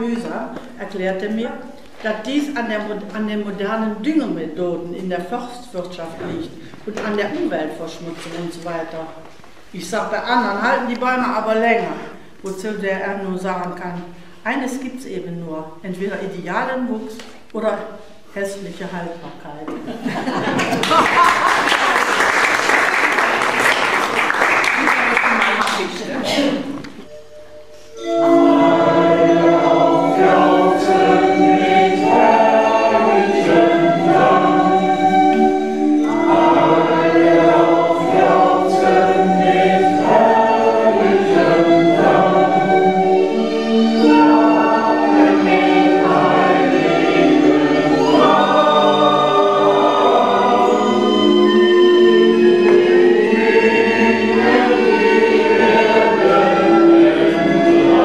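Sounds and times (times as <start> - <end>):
choir singing long notes: 27.1 - 58.0.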